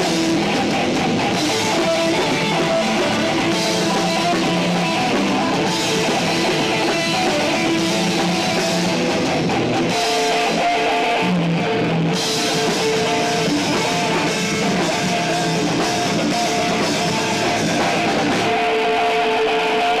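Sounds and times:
distorted electric guitars: 0.0 - 20.0
drum kit with crashing cymbals: 0.0 - 20.0.

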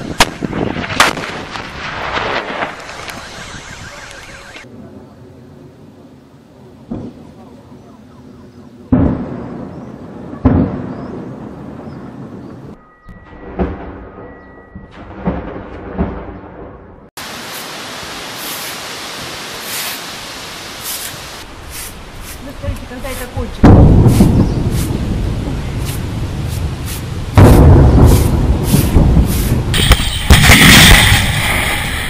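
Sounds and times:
artillery booms with rolling rumble: 0.0 - 3.2, 8.9 - 12.7, 13.4 - 17.1, 23.4 - 32.0
dense noise with crackles: 0.2 - 6.1.

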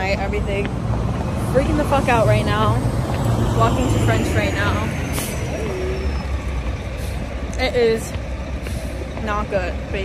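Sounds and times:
truck diesel engine rumbling: 0.0 - 10.0.

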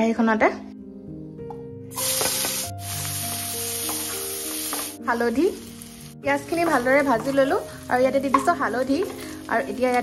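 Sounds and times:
onions sizzling in hot oil: 1.9 - 10.0.

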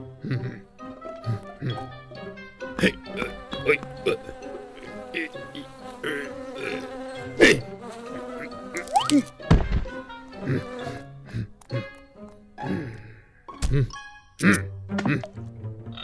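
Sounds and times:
light background music: 0.0 - 16.0
cartoon bees buzzing: 2.6 - 11.2.

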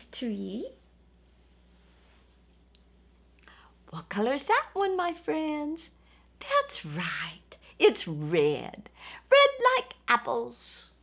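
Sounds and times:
woman speaking: 0.0 - 0.9, 3.9 - 11.0
steady low hum: 0.0 - 11.0.

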